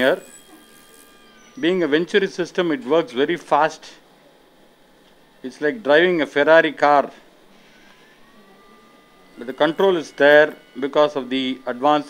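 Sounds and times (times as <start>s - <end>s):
faint electronic tone: 0.0s - 12.0s.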